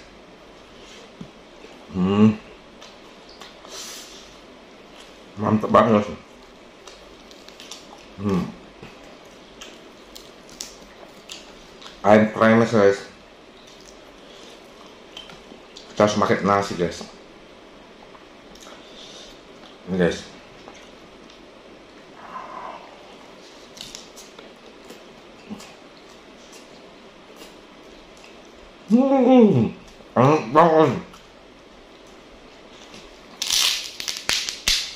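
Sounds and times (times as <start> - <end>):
person chewing food: 6.8 - 12.0, 13.6 - 16.0, 20.5 - 28.6.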